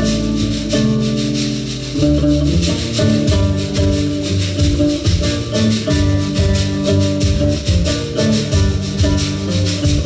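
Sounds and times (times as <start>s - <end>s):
plucked double bass: 0.0s - 10.0s
plucked lute: 0.0s - 10.0s
strummed acoustic guitar: 0.0s - 10.0s.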